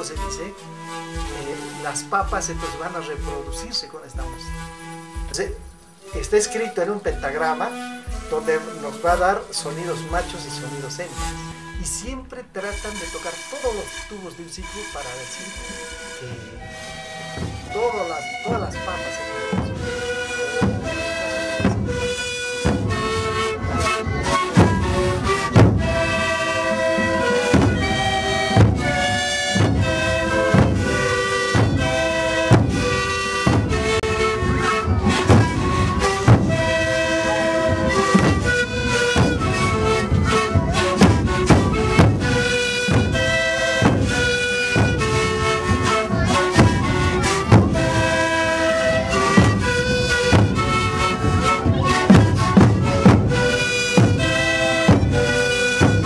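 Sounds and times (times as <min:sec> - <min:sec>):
bass drums beat: 0:00.0 - 0:09.5, 0:10.1 - 0:56.0
panpipes playing melody: 0:00.0 - 0:56.0.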